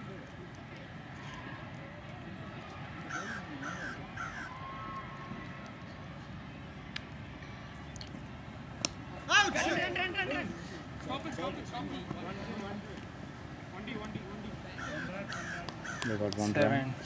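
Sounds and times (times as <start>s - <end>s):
players shouting: 0.8s - 5.8s, 8.8s - 12.9s, 13.8s - 17.0s.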